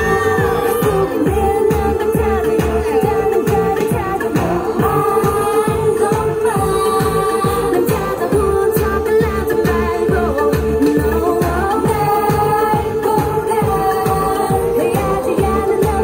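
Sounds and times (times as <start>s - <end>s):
pop song singing: 0.0s - 16.0s.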